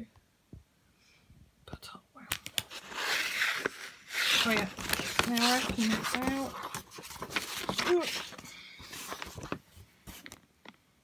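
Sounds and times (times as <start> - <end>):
paper booklet rustling: 2.3 - 10.4.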